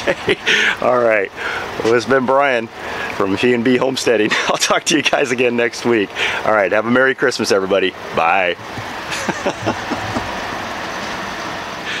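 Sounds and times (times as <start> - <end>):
person laughing: 0.0 - 0.8, 4.2 - 4.7, 9.1 - 10.4
electric fans whooshing: 0.0 - 12.0.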